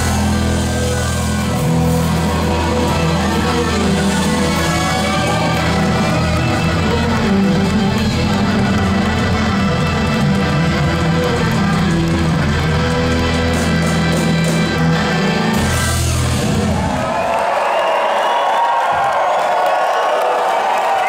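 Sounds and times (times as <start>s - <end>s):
electric guitar: 0.0s - 17.0s
bass guitar: 0.0s - 17.1s
drums: 0.0s - 19.6s.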